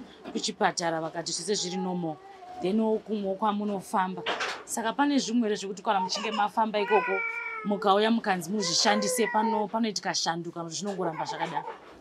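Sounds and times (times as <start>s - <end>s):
woman talking: 0.3s - 11.8s.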